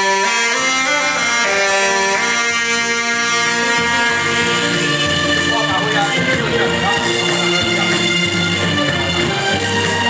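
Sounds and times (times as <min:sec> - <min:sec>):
saxophones playing slow melody: 0:00.0 - 0:10.0.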